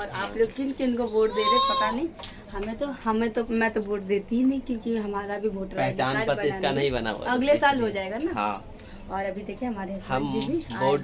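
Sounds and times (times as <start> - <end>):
people talking: 0.0 - 6.3.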